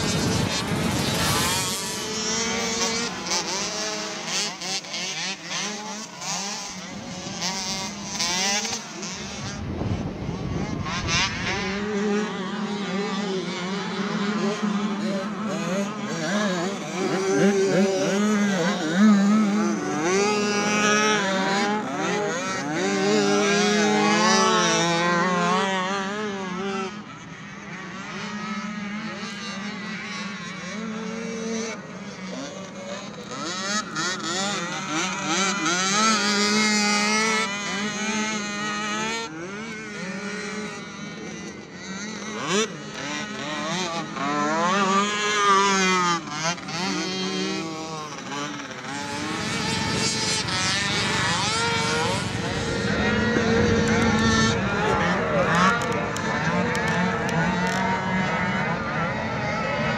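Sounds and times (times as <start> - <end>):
small engine revving: 0.0 - 59.9.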